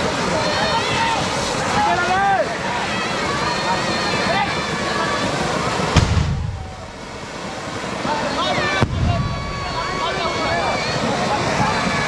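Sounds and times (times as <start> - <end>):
crowd voices: 0.0 - 12.0
firecracker bang: 5.9 - 6.8, 8.8 - 9.7.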